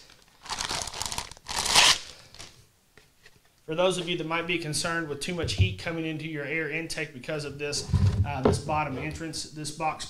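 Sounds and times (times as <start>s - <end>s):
plastic bag crinkling and tearing: 0.0s - 2.6s.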